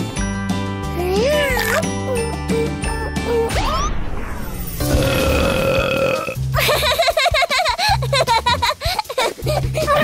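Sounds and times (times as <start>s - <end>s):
background music: 0.0s - 10.0s
cartoon burp: 4.8s - 6.4s.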